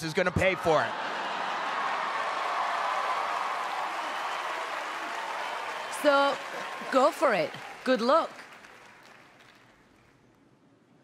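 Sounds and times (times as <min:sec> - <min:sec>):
audience laughing and applauding: 0:00.4 - 0:10.0.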